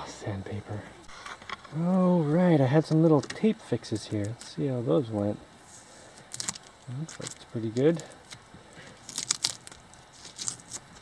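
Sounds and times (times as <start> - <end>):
plastic tape crumpling: 6.2 - 11.0
plastic tape peeling: 6.2 - 11.0.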